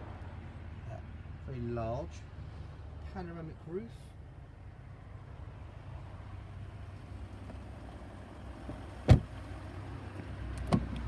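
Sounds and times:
car door shutting with thud: 9.0s - 9.3s, 10.6s - 11.0s.

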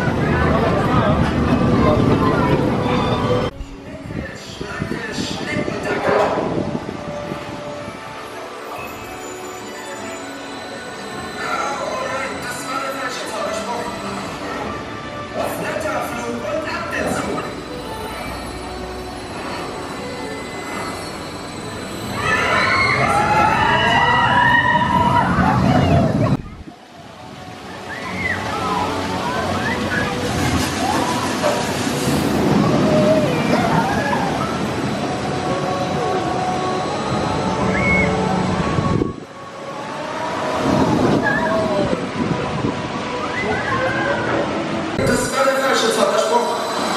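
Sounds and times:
roller coaster train rushing: 0.0s - 46.9s.

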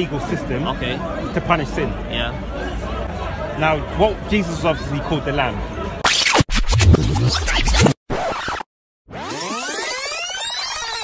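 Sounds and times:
record scratch: 6.0s - 11.0s.

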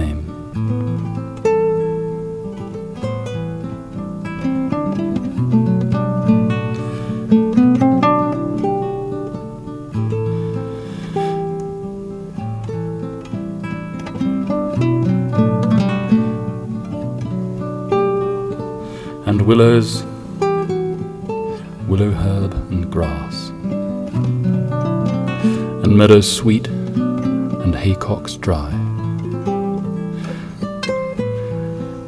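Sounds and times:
fingerstyle classical guitar: 0.0s - 32.0s.

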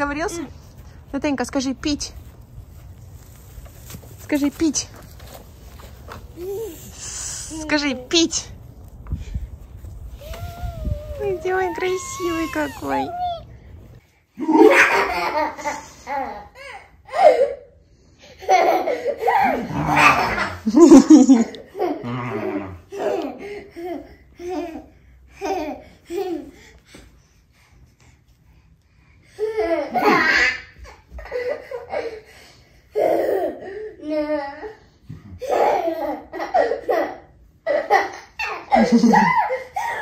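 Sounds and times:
toddler laughing: 10.2s - 13.7s, 29.4s - 32.1s, 35.4s - 40.0s.

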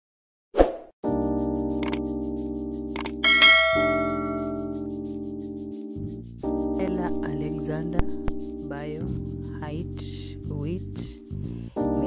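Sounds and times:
mouse clicks: 3.0s - 3.2s
held synth chord: 3.2s - 4.8s
notification bell chime: 3.2s - 4.8s.

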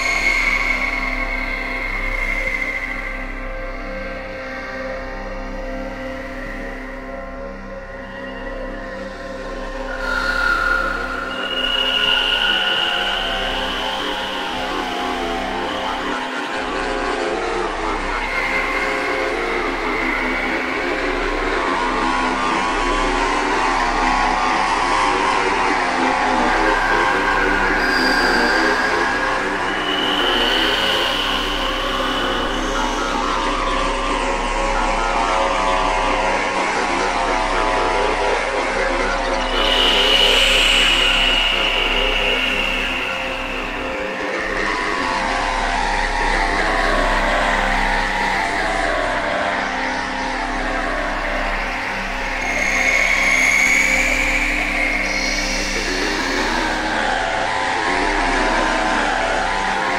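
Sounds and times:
ambient electronic music: 0.0s - 59.9s.

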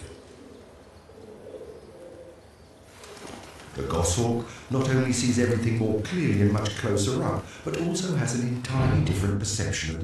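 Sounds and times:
pigeons cooing: 0.0s - 4.7s.

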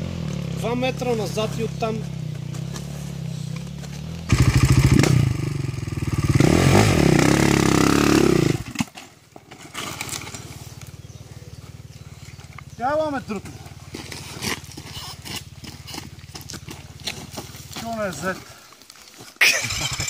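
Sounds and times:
dirt bike engine revving: 0.0s - 8.8s, 19.4s - 20.0s.

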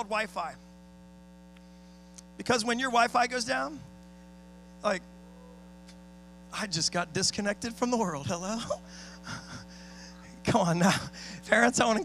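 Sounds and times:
electrical hum: 0.0s - 12.0s
person speaking: 10.1s - 12.0s.

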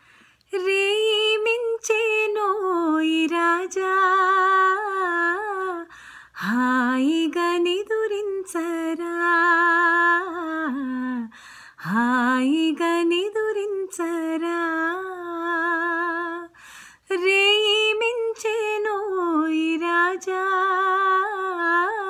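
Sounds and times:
woman singing a lullaby: 0.5s - 22.0s.

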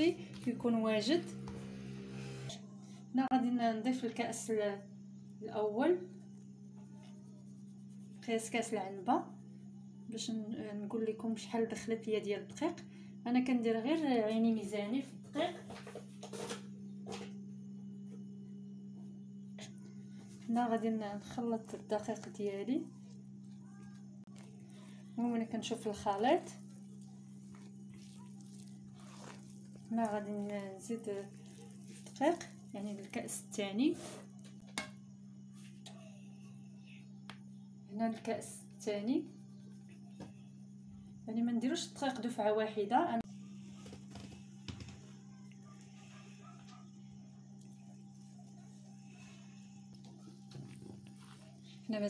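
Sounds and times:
hands mixing dough: 0.0s - 2.1s, 5.5s - 9.1s, 19.1s - 36.0s, 38.0s - 42.6s, 43.3s - 52.0s
steady low hum: 0.0s - 52.0s
hand squishing dough: 6.8s - 8.6s, 20.2s - 34.4s.

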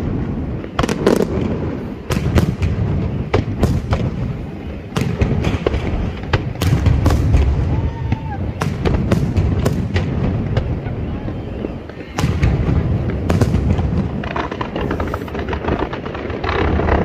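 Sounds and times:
continuous low rumble: 0.0s - 17.0s
fireworks bursting with sharp bangs: 0.0s - 17.0s.

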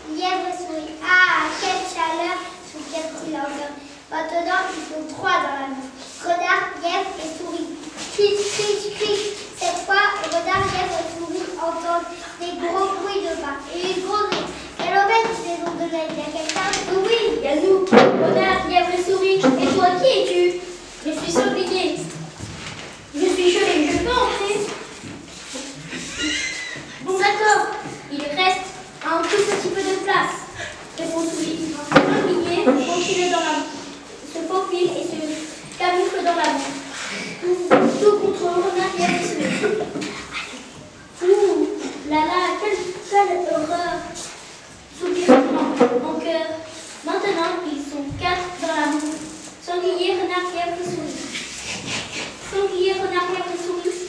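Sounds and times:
children talking: 0.0s - 22.4s, 23.1s - 44.2s, 44.8s - 54.0s.

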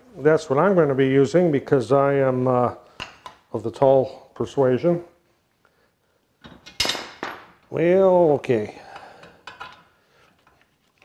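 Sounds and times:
metal hardware clinking: 6.4s - 7.7s.

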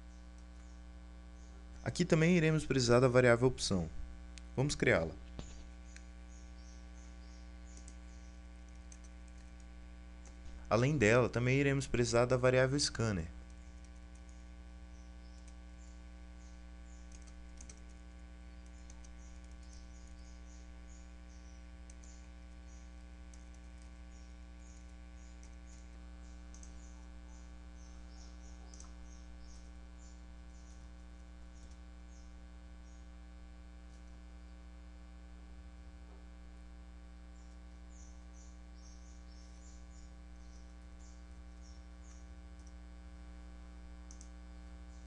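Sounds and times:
low electrical hum: 0.0s - 45.0s
computer keyboard typing: 7.7s - 8.0s, 8.6s - 10.4s, 13.4s - 14.5s, 17.0s - 18.0s, 18.6s - 20.2s, 21.8s - 22.6s, 23.3s - 24.0s, 24.7s - 27.0s, 28.6s - 29.0s, 42.6s - 42.8s, 44.1s - 44.3s.

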